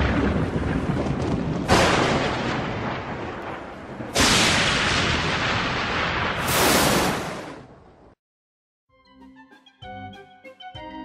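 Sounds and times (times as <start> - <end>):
booming crash with rumble: 0.0 - 7.8.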